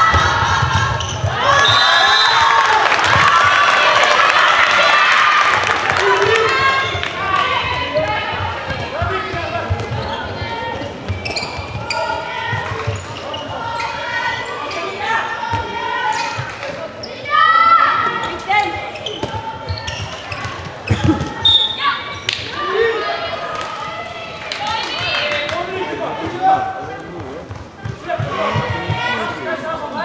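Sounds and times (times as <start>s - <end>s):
people calling and shouting: 0.0s - 30.0s.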